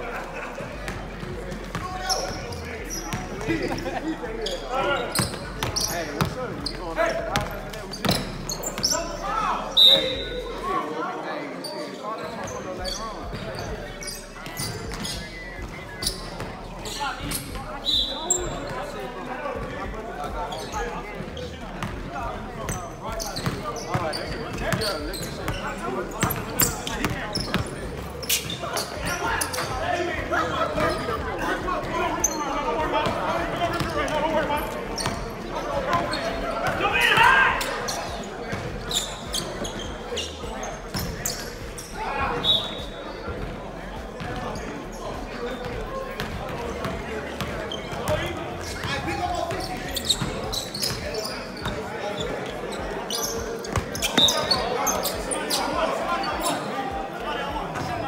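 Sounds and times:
players' voices: 0.0s - 58.0s
sneaker squeaks: 1.0s - 3.8s, 4.4s - 10.7s, 11.6s - 43.6s, 44.2s - 56.7s, 57.8s - 58.0s.

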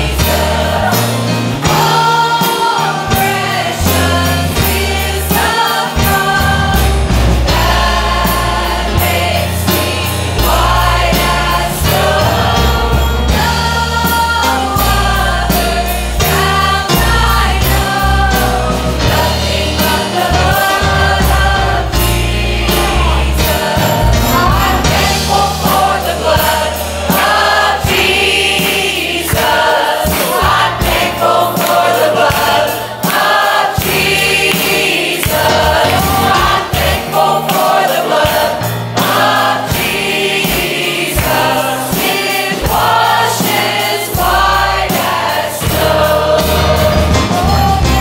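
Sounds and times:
church choir singing: 0.0s - 48.0s
instrumental accompaniment: 0.0s - 48.0s.

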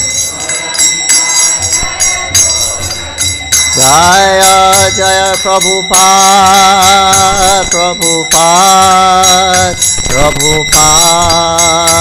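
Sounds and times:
hand cymbals clashing and ringing: 0.0s - 12.0s.

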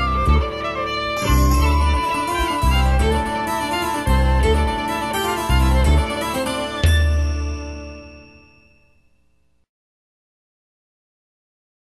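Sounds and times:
instrumental tune with pulsing bass: 0.0s - 8.4s.

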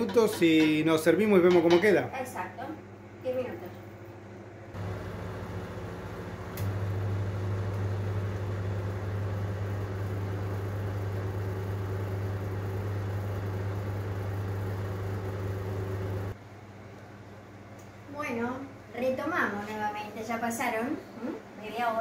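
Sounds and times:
range hood fan humming: 0.0s - 22.0s.

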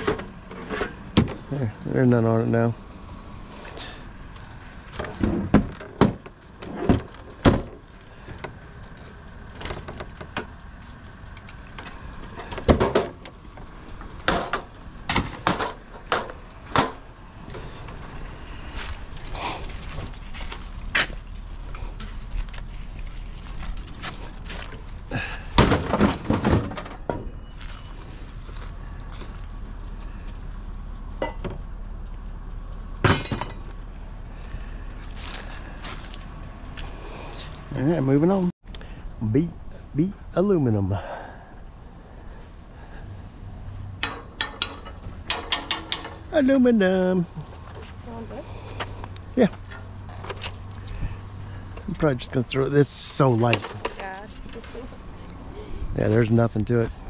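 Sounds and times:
scrap items clattering onto trailer: 0.0s - 1.5s, 9.5s - 18.2s, 23.6s - 29.4s.

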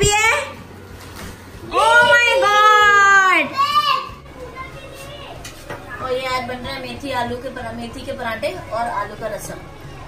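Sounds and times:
children cheering: 1.8s - 4.2s.

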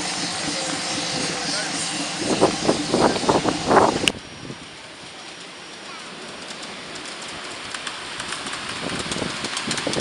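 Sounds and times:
miniature train rolling past: 0.0s - 10.0s.

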